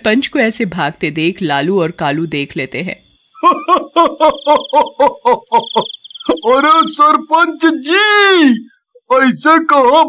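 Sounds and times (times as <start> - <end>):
man laughing: 3.4 - 6.9.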